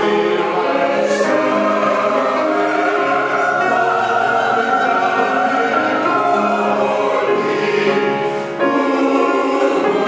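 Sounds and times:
mixed choir singing: 0.0s - 10.0s.

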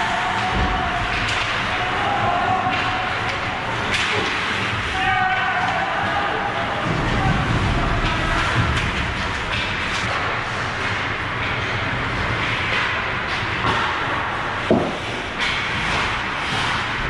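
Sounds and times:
hockey stick and puck clacks: 0.0s - 17.0s.

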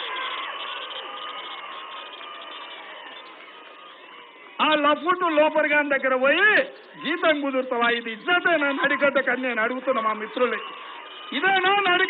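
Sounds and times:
large crowd cheering and shouting: 0.0s - 12.0s.

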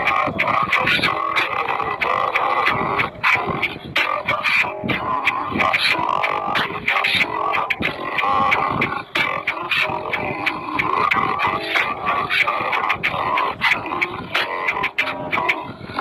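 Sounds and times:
slowed-down singing with music: 0.0s - 16.0s.

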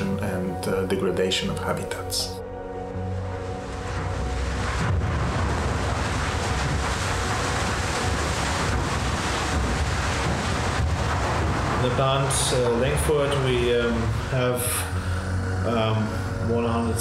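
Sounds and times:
rocks tumbling and sliding: 3.6s - 14.6s.

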